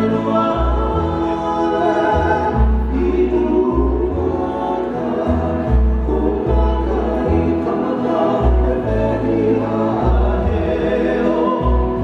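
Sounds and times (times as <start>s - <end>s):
acoustic guitars: 0.0s - 12.0s
person singing: 0.0s - 12.0s
upright bass: 0.0s - 12.0s.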